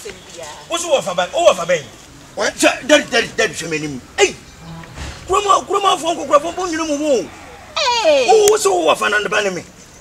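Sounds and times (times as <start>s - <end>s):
low hum: 3.2s - 8.4s.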